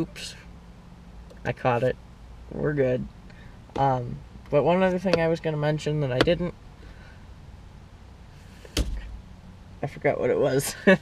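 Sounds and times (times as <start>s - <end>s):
sharp knock: 8.7s - 9.1s.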